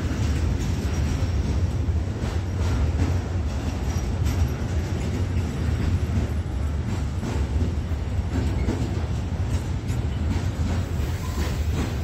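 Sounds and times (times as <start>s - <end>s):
freight wagons rumbling: 0.0s - 12.0s.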